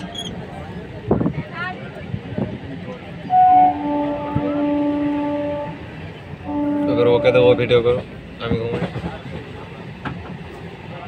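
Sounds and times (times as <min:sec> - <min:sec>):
train horn: 0:03.3 - 0:07.8.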